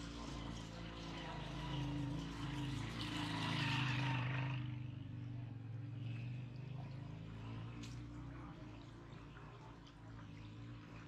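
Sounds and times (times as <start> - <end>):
motorcycle engine passing by: 0.0 - 9.6.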